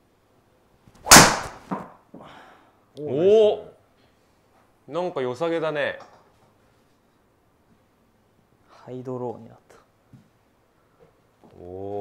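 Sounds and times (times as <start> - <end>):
golf club swish: 1.0 - 1.7
golf ball impact crack: 1.0 - 1.9.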